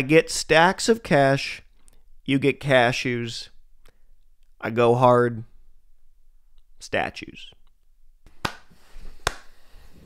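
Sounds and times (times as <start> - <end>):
slow hand claps: 8.3 - 9.5.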